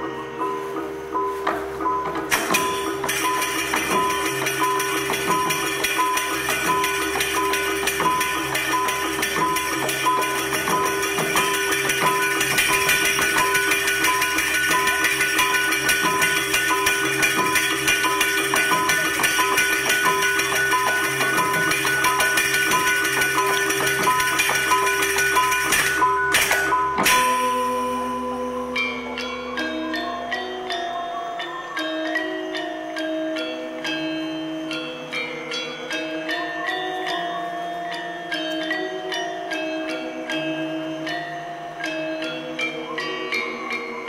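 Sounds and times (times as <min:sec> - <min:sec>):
gamelan playing: 0:00.0 - 0:44.0.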